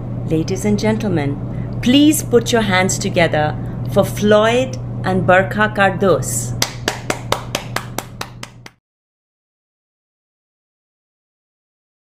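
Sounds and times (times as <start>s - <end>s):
person clapping: 6.6s - 8.8s.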